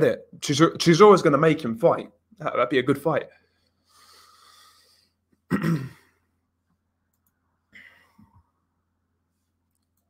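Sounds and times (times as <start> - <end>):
man clearing his throat: 5.5 - 6.2.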